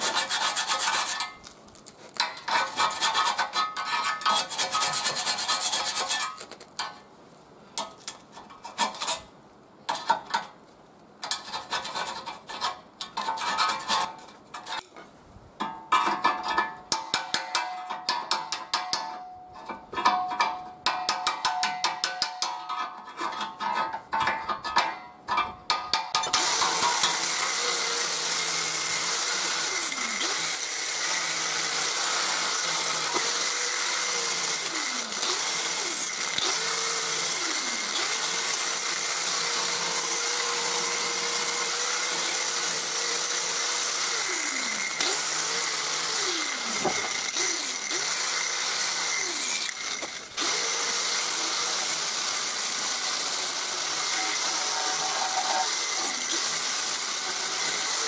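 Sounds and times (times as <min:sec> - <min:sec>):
angle grinder grinding metal: 0:00.0 - 0:01.4, 0:26.3 - 0:58.0.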